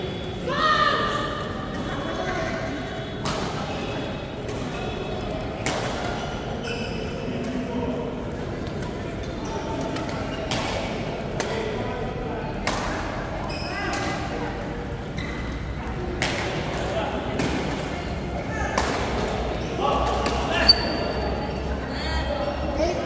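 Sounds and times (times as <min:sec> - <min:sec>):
voices in background: 0:00.0 - 0:23.0
shoe squeaks on court: 0:06.6 - 0:07.2, 0:20.6 - 0:21.6.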